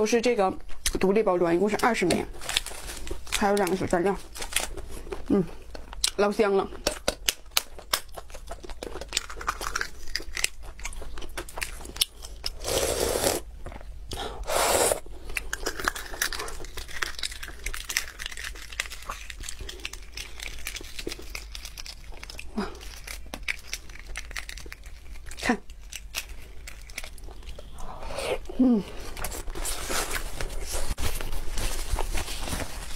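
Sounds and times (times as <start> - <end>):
eggshell crackling: 1.7 - 13.9, 15.2 - 29.5.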